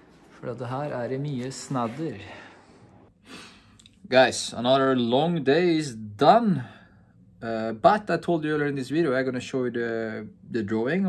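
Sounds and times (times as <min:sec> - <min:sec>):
man speaking: 0:00.3 - 0:02.6.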